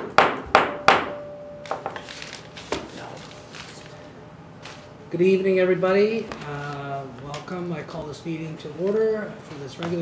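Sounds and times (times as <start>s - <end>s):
sharp ringing knocks: 0.0s - 2.0s.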